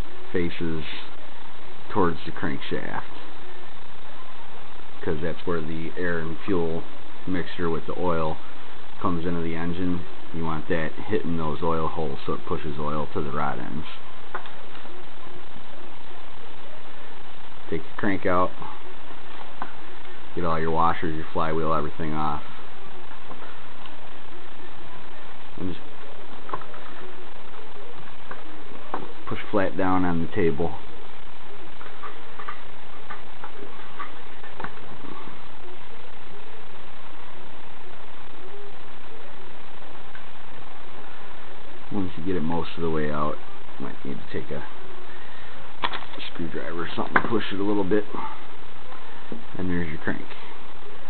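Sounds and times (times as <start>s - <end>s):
steady hiss: 0.0s - 51.0s.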